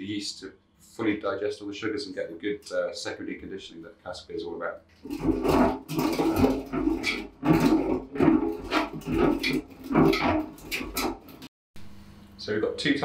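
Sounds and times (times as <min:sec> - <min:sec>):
metal cask rolling on floor: 0:05.0 - 0:11.5.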